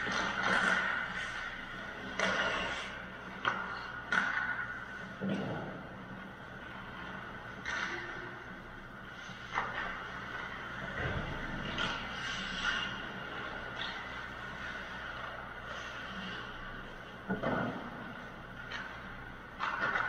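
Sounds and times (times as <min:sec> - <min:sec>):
hockey sticks and skates on ice: 0:00.0 - 0:20.0
steady mechanical hum: 0:00.0 - 0:20.0.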